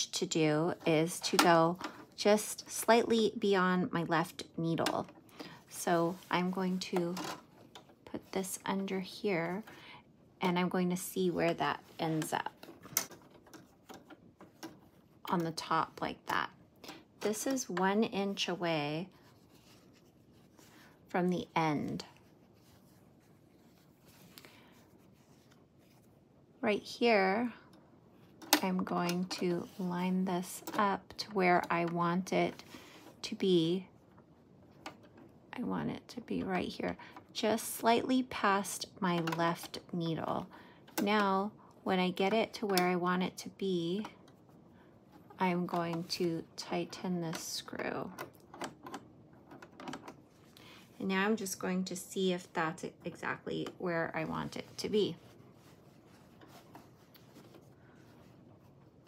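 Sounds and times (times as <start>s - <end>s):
fabric rustling: 19.1s - 26.3s, 54.0s - 59.0s.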